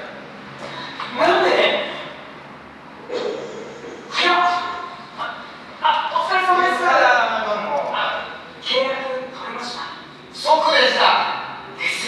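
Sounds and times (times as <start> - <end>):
man speaking: 0.8 - 2.2, 3.1 - 12.0.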